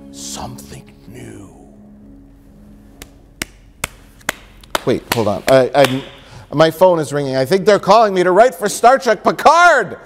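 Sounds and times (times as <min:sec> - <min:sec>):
person clapping slowly: 0:03.0 - 0:06.2.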